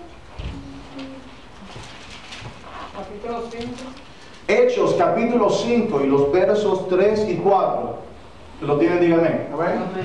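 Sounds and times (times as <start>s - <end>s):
pages being turned: 0.9s - 4.5s.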